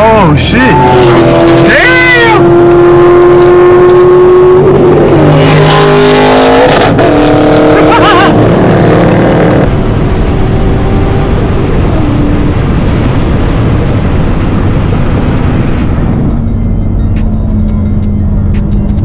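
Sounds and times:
car engine at highway speed: 0:00.0 - 0:19.0
music with bending held notes: 0:02.4 - 0:19.0.

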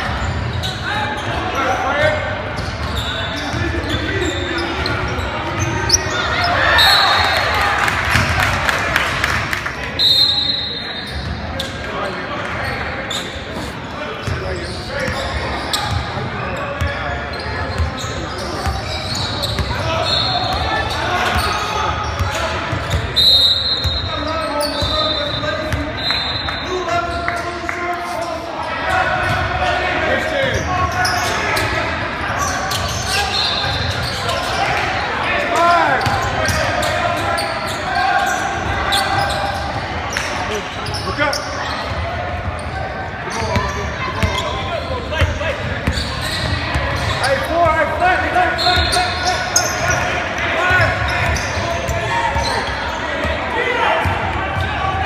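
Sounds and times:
chatter of people: 0:00.0 - 0:55.0.

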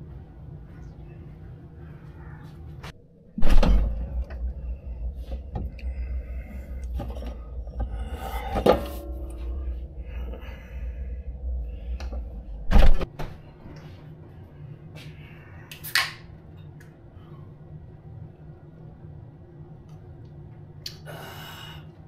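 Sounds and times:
refrigerator humming: 0:00.0 - 0:22.0.

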